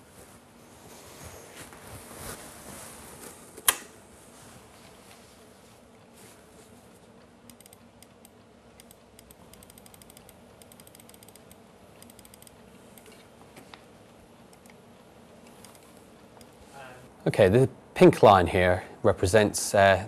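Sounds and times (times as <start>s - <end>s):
low steady room hum: 0.0s - 20.0s
typing on computer keyboard: 8.8s - 13.1s.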